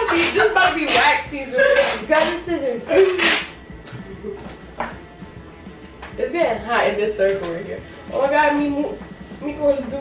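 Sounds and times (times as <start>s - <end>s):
duct tape roll scratching: 0.0s - 3.7s
low background music: 0.0s - 10.0s.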